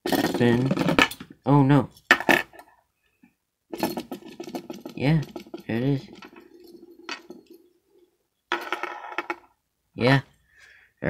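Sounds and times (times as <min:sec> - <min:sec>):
spinning top rattling on table: 0:03.8 - 0:07.7, 0:08.5 - 0:09.6.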